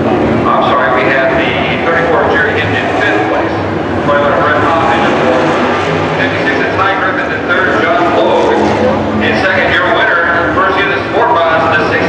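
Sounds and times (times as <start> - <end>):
race car engines running: 0.0 - 12.0.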